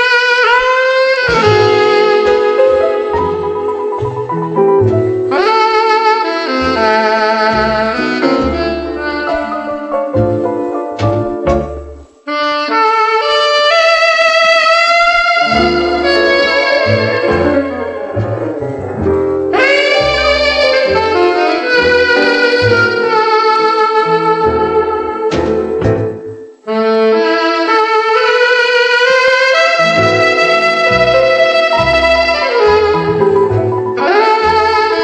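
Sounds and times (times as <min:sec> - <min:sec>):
band's lower instruments: 0:00.0 - 0:35.0
jazz saxophone ballad melody: 0:00.0 - 0:35.0.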